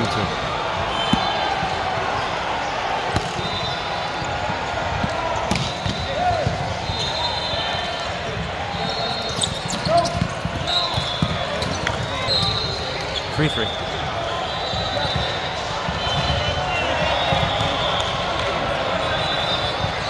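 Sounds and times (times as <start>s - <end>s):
crowd voices: 0.0s - 20.0s
volleyballs struck and bouncing: 1.0s - 2.3s, 3.0s - 7.1s, 9.3s - 13.2s, 14.0s - 20.0s
shoes squeaking on court: 5.3s - 14.0s.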